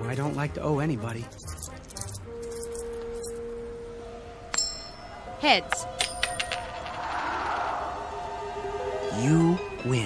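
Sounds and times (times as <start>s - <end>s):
coin clinking and ringing: 1.1s - 3.5s, 4.5s - 5.1s, 5.9s - 7.0s.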